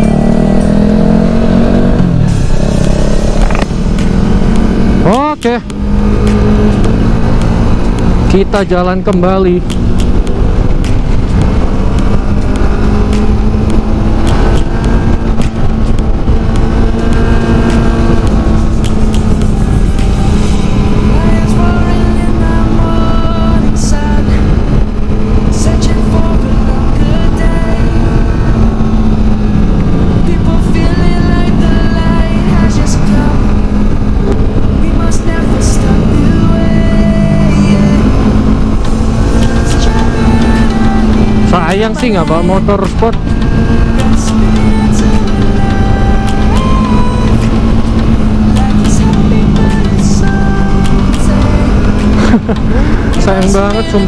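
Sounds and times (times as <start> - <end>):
background music: 0.0 - 54.0
motorcycle engine running: 0.0 - 54.0
wind noise: 0.0 - 54.0.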